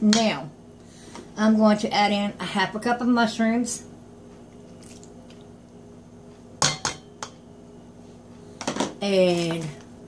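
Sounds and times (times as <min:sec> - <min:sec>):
low steady hum: 0:00.0 - 0:10.0
kitchenware clinking on metal bowl: 0:06.6 - 0:07.4.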